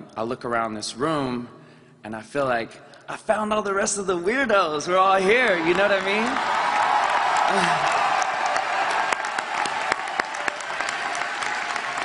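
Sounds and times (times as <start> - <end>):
large audience applauding: 5.2 - 12.0.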